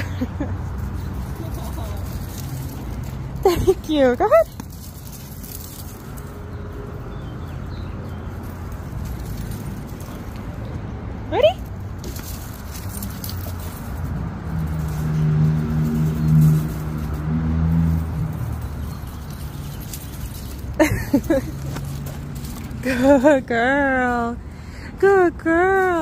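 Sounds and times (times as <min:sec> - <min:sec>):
passing motor vehicle hum: 0:00.0 - 0:26.0.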